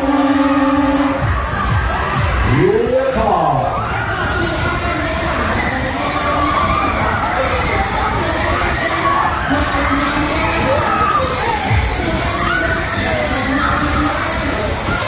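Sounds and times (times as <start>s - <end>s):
loud ride music: 0.0s - 15.0s
riders shouting and cheering: 0.0s - 15.0s.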